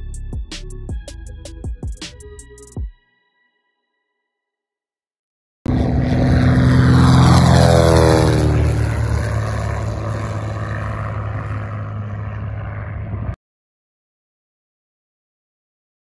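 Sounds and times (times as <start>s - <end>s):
propeller airplane passing overhead: 5.7s - 13.4s.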